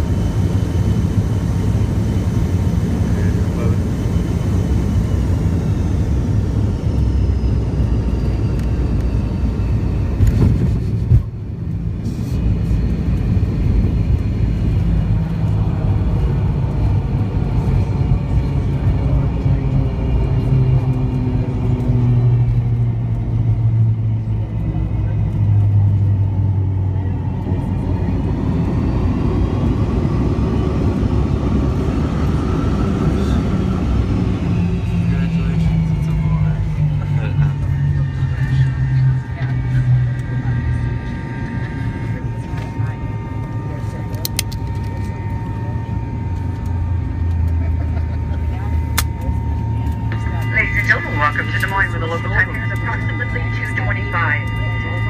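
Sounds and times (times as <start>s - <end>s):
airliner cabin engine rumble: 0.0s - 55.0s.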